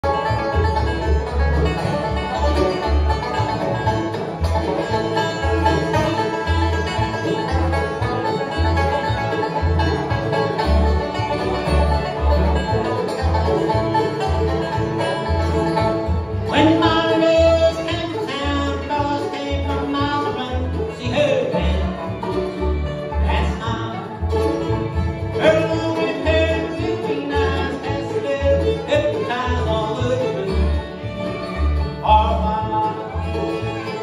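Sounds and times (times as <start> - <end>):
acoustic guitar: 0.0 - 34.0
banjo: 0.0 - 34.0
dobro: 0.0 - 34.0
fiddle: 0.0 - 34.0
mandolin: 0.0 - 34.0
upright bass notes: 0.0 - 34.0.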